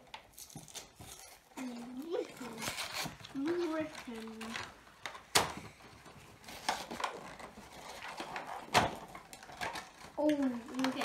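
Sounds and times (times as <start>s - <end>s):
cardboard tearing and knocking: 2.2s - 5.7s, 6.4s - 11.0s.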